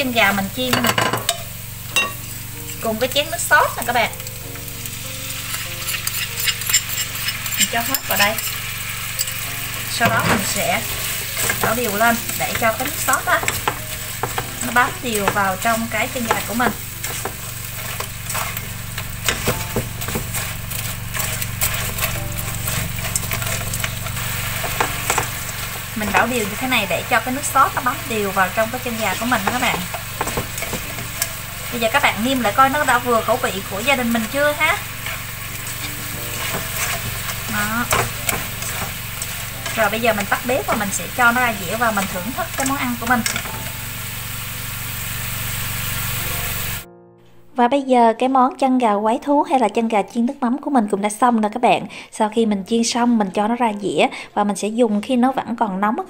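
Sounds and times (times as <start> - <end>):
sauce sizzling in a wok: 0.0 - 46.9
soft music: 0.0 - 51.5
wooden utensil scraping a pan: 5.5 - 43.6
steady low hum: 8.4 - 44.6.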